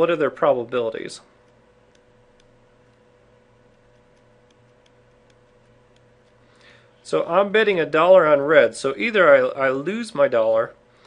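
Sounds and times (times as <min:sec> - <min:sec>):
low electrical hum: 0:00.0 - 0:11.0
stylus tapping on tablet: 0:01.4 - 0:06.4.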